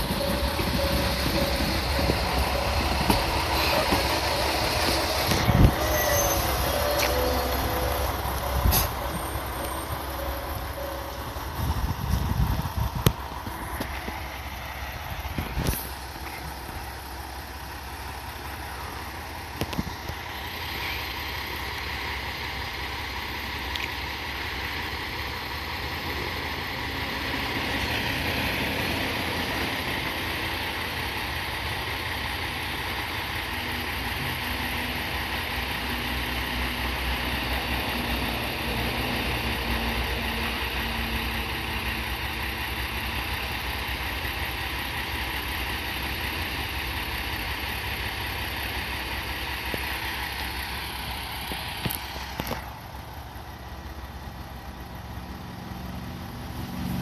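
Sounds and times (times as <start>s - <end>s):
diesel engine idling: 0.0s - 57.0s.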